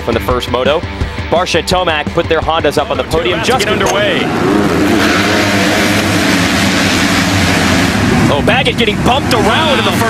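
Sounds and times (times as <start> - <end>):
motocross bikes at full throttle: 0.0 - 10.0.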